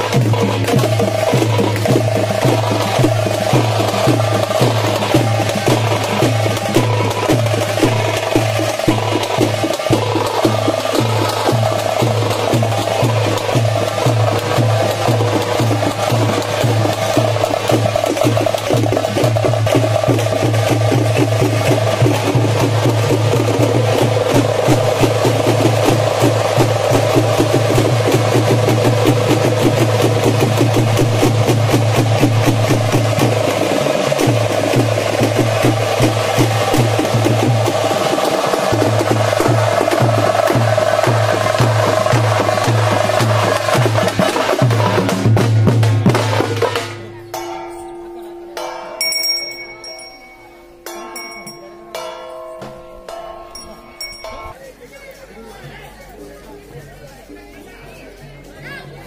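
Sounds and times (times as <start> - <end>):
frame drums played fast: 0.0 - 47.6
low tone: 47.0 - 54.6.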